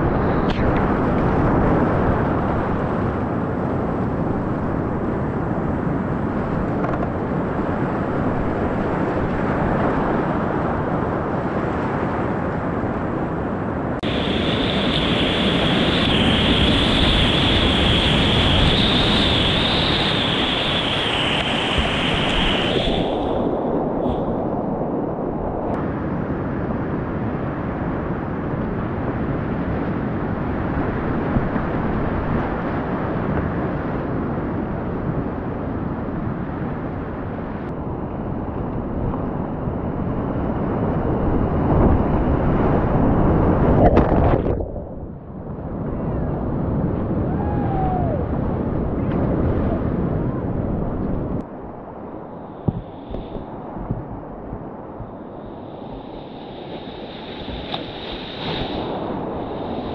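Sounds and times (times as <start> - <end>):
whitewater rapids rushing: 14.0 - 23.4.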